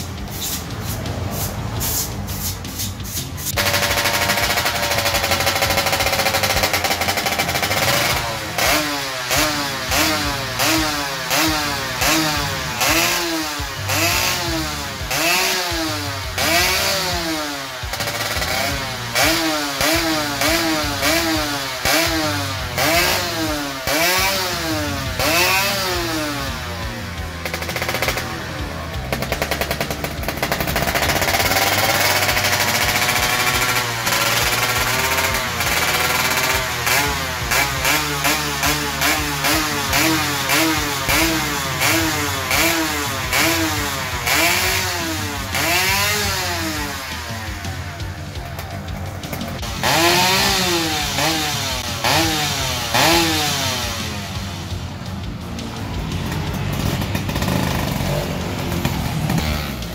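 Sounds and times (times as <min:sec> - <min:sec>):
two-stroke engine revving: 0:00.0 - 0:59.9.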